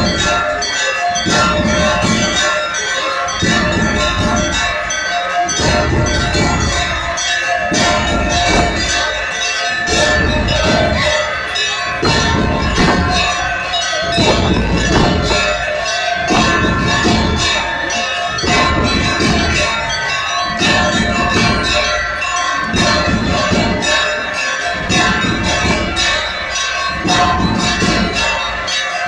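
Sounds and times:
hand bells ringing rapidly: 0:00.0 - 0:29.0.

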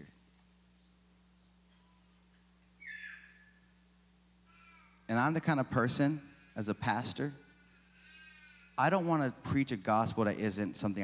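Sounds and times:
faint sound system hum: 0:00.0 - 0:11.0.

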